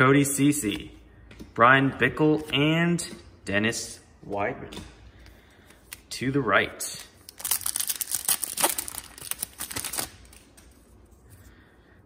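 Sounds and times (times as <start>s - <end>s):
foil wrapper tearing and crinkling: 7.3s - 10.4s.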